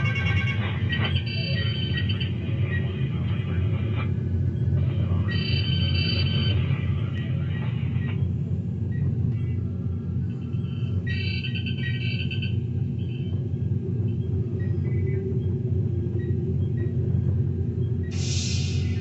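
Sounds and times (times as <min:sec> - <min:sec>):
burst of hiss: 0:18.2 - 0:19.0.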